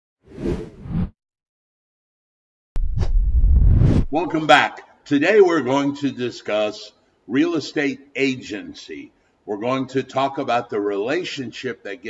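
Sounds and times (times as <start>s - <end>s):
whoosh sound effect: 2.8s - 4.4s.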